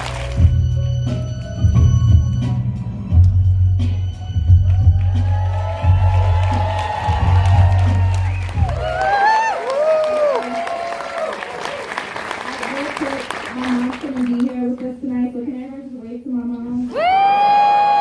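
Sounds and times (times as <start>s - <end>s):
audience applauding and cheering: 0.0s - 1.6s, 4.4s - 14.7s, 17.0s - 18.0s.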